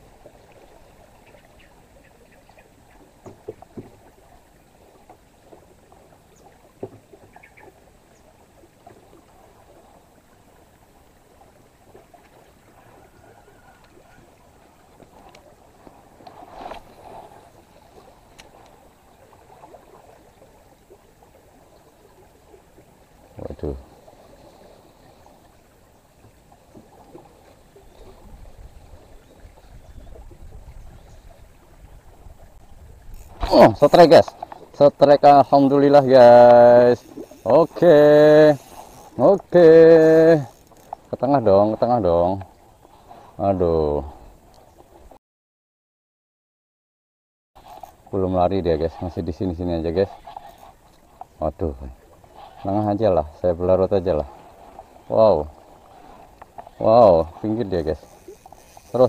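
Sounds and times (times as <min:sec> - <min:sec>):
river current rushing: 0:31.2 - 0:44.0, 0:47.6 - 0:59.0.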